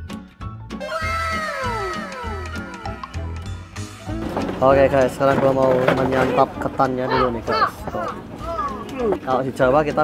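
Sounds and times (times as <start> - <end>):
tone sliding down in pitch: 0.8 - 3.6.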